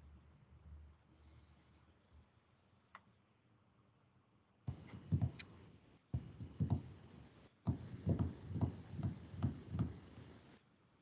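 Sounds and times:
muffled thumps on microphone: 6.2 - 7.0, 7.7 - 10.1.

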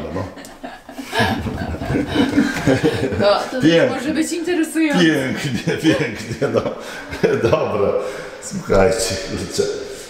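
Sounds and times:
person laughing: 0.4 - 3.4, 5.5 - 7.7.

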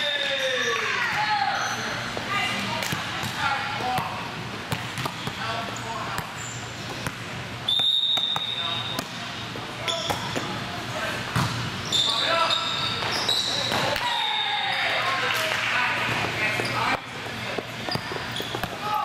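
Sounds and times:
referee whistle: 7.7 - 9.0.

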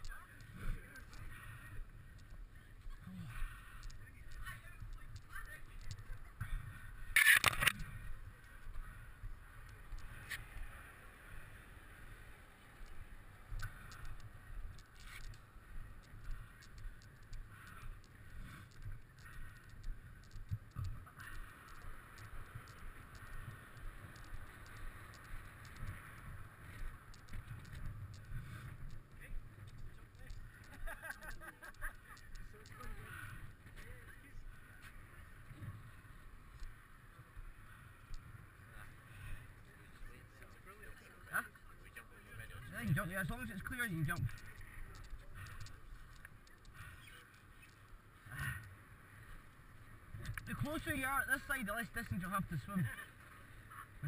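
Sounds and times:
wind rumble on microphone: 0.0 - 40.6.

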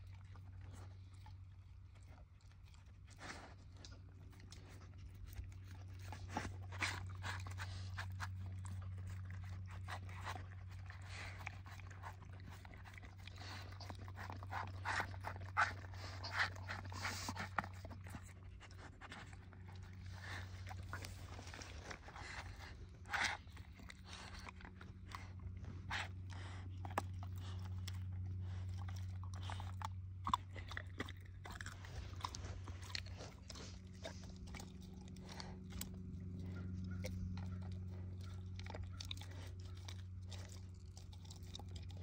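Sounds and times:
dog chewing and crunching food: 0.0 - 42.0
steady low hum: 0.0 - 42.0.

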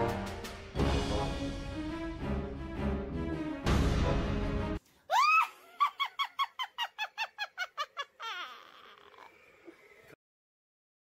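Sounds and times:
woman cackling: 5.1 - 9.8.

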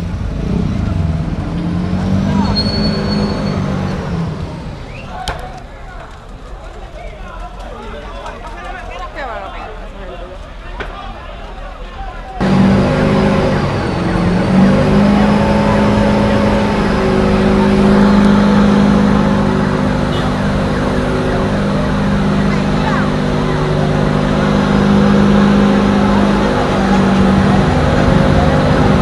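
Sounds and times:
loud engine drone: 0.0 - 5.7, 12.4 - 29.0.

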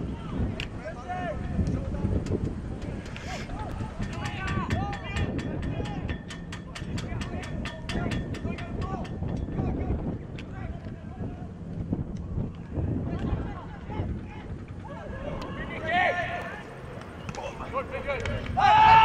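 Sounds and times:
wind rumble on microphone: 0.0 - 19.0
fast faint clicks: 1.6 - 9.7, 10.3 - 11.1, 11.7 - 13.4, 16.4 - 17.5, 18.1 - 18.6
players shouting: 12.7 - 19.0.

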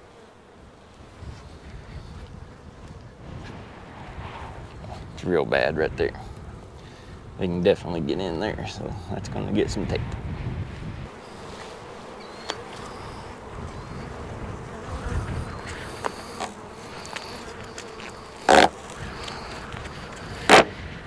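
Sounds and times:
honeybees buzzing: 0.0 - 21.0
loud rasping noises: 14.8 - 20.8.

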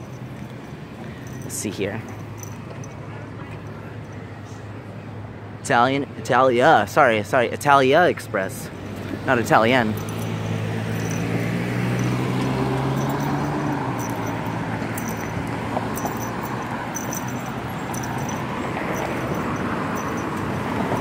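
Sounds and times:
vehicle engine humming: 0.0 - 5.6, 8.0 - 21.0
cars driving past: 0.0 - 6.2, 8.3 - 21.0.

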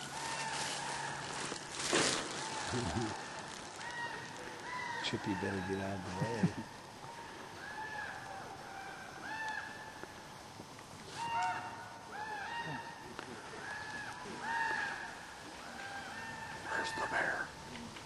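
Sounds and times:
bird calling: 11.1 - 18.0.

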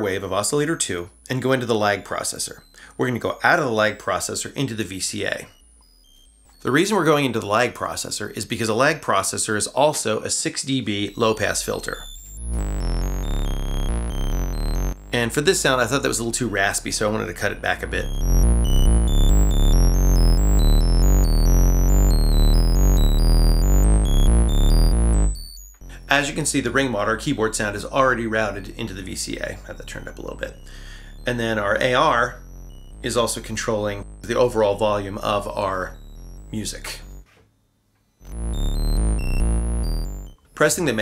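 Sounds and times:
high synth notes jumping: 1.1 - 7.0, 11.1 - 37.3, 38.2 - 41.0
synth stepping bass line: 11.1 - 37.3, 38.2 - 41.0
deep steady synth low end: 11.2 - 37.2, 38.2 - 41.0.

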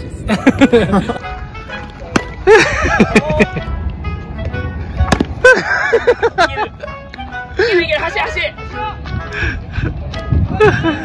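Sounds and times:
men laughing: 0.2 - 1.4, 2.2 - 3.8, 5.3 - 8.1, 9.3 - 11.0
light background music: 0.4 - 11.0.

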